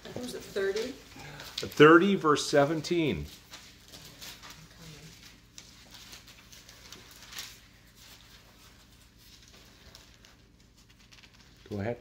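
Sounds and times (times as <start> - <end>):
paper pages rustling: 0.0 - 12.0.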